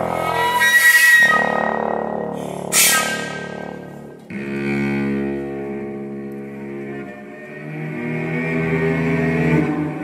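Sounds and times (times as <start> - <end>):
chamber ensemble holding tones: 0.0 - 10.0.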